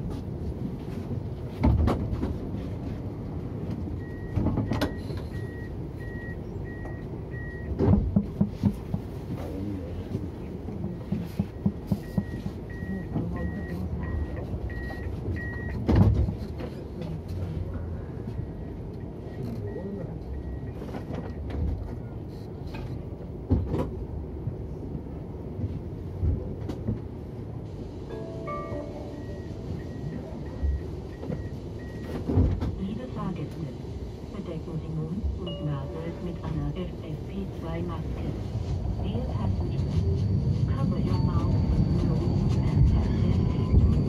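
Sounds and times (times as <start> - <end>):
tram doors shutting with knocks: 0.0 - 5.8, 6.7 - 9.4, 10.0 - 16.9, 20.7 - 24.4, 25.0 - 27.4, 28.1 - 33.0
tram warning beeper: 3.6 - 7.8, 10.4 - 15.9, 18.2 - 21.5, 28.0 - 32.3, 34.8 - 44.0
high door-warning beep: 28.1 - 32.2.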